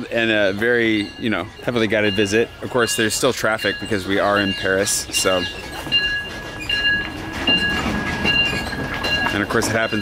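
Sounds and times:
city transport rumble: 0.0s - 10.0s.

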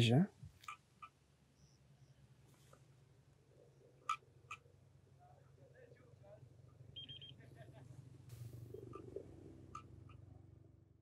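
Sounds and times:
steady low hum: 0.2s - 11.0s
high beeps: 7.0s - 7.4s.

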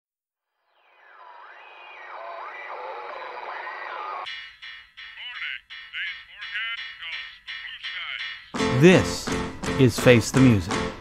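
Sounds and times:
sliding whistling tones: 0.7s - 8.6s
radio static hiss: 1.0s - 4.3s.

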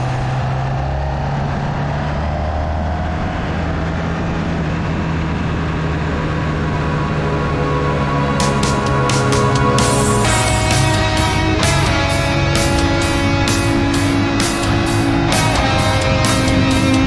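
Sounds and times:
motorcycle engine accelerating: 0.0s - 17.0s.

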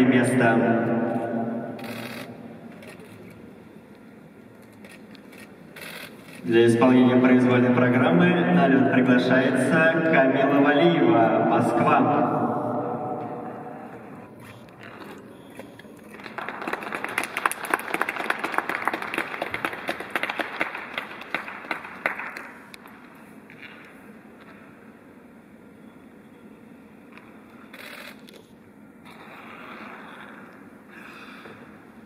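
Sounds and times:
ice rink background noise: 0.0s - 32.0s
audience applauding: 16.0s - 22.7s.

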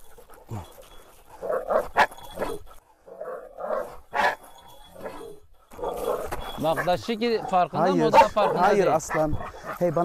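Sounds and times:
dogs growling and barking: 0.0s - 10.0s.

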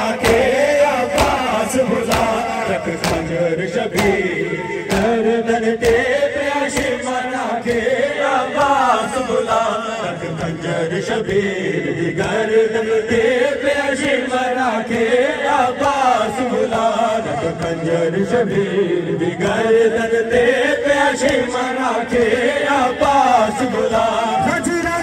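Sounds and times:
person chanting a lament: 0.0s - 25.0s.

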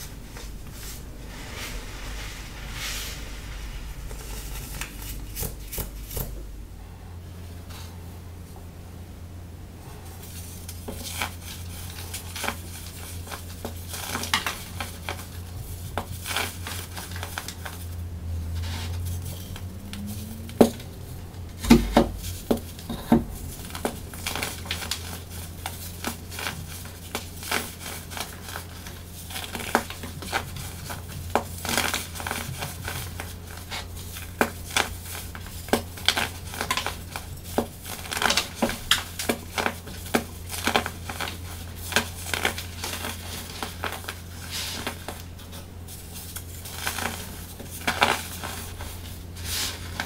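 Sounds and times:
baking soda crunching by hand: 10.1s - 50.0s.

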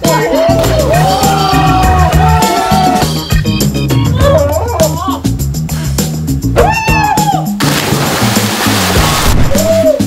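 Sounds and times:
background music with bass line: 0.0s - 10.0s
people splashing into pool: 7.6s - 10.0s.

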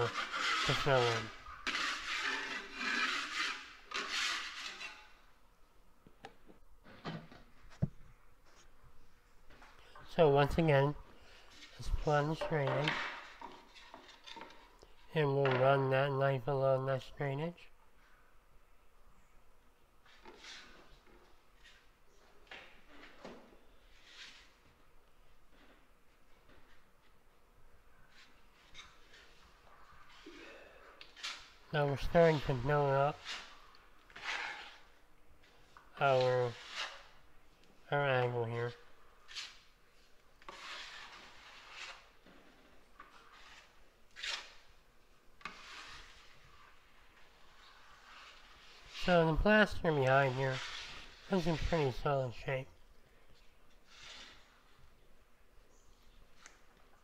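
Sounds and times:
drywall knife scraping plaster: 0.0s - 5.2s, 20.0s - 21.9s, 23.9s - 24.7s, 28.1s - 37.3s, 38.1s - 44.8s, 45.4s - 52.4s, 53.8s - 54.8s.

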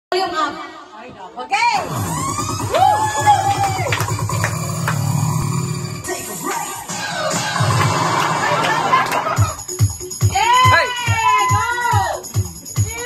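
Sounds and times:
electronic dance backing track: 1.6s - 13.0s.

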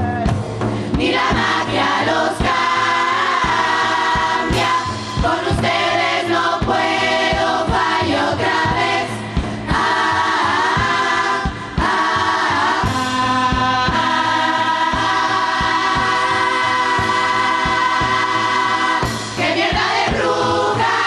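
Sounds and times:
steady drum beat: 0.0s - 21.0s
chorus singing together: 0.8s - 21.0s.

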